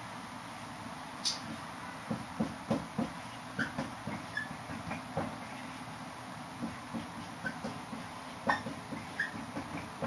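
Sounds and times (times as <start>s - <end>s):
marker writing on whiteboard: 1.3s - 5.8s, 6.6s - 10.0s
marker tip squeaking: 3.6s - 5.0s, 8.4s - 9.5s.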